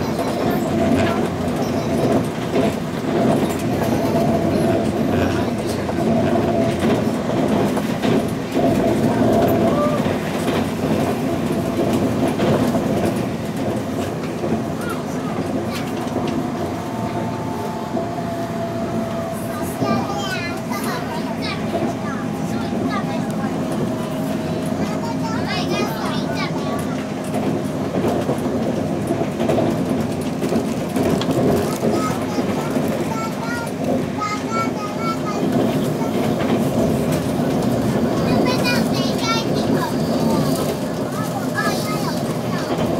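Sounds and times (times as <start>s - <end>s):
clickety-clack of rails: 0.0s - 42.9s
train wheels rumbling on rail: 0.0s - 42.9s.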